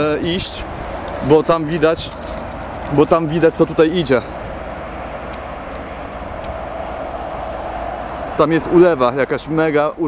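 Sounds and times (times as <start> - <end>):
wind noise on microphone: 0.0 - 2.9.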